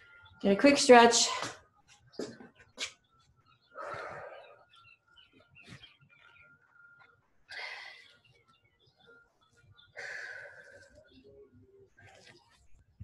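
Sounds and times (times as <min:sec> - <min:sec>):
heavy breathing: 0:03.6 - 0:04.8, 0:07.5 - 0:08.4, 0:09.9 - 0:11.1.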